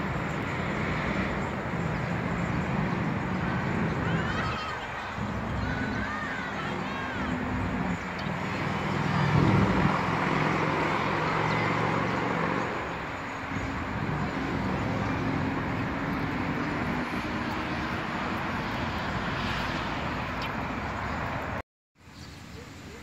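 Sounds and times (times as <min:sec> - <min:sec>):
low engine hum: 0:00.0 - 0:21.6
traffic noise: 0:00.0 - 0:23.0.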